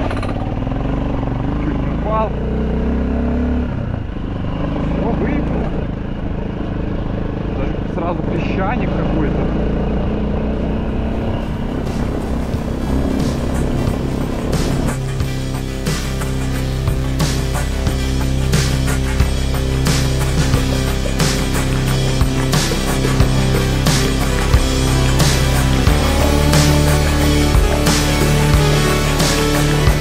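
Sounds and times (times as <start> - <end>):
dirt bike engine running: 0.0 - 30.0
music: 11.2 - 30.0.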